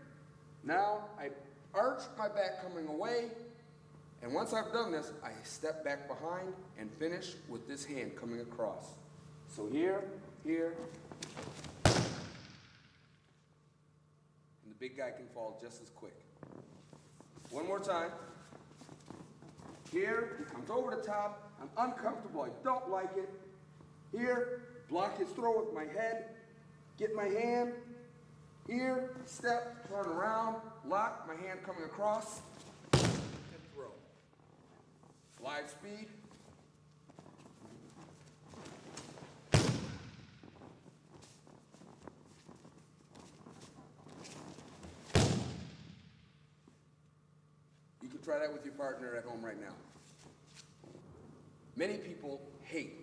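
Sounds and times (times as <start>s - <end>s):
body slamming onto mats: 11.4s - 12.6s, 32.8s - 33.5s, 39.5s - 40.3s, 45.0s - 46.0s
bare footsteps on a mat: 32.6s - 33.6s
feet scuffing on mat: 36.2s - 45.9s.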